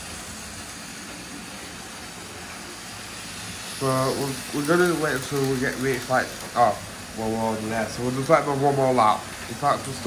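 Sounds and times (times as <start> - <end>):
model train motor whirring: 0.0 - 10.0.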